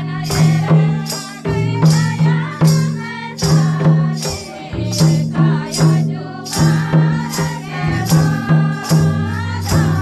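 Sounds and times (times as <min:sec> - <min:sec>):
barrel drum strokes: 0:00.0 - 0:10.0
group singing: 0:00.0 - 0:10.0.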